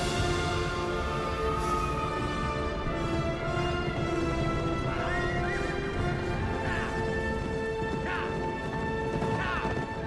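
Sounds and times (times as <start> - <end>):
film score music: 0.0 - 10.0
horses galloping hoofbeats: 3.2 - 10.0.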